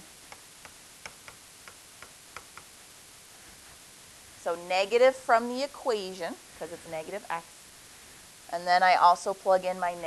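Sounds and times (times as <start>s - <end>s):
faint steady hiss: 0.0s - 10.0s
stylus tapping writing surface: 0.3s - 2.7s.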